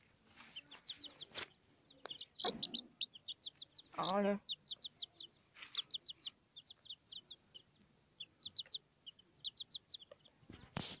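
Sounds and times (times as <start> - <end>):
rustling noise: 0.0 - 1.6, 5.5 - 6.0, 10.4 - 11.0
young chicks peeping: 0.0 - 11.0.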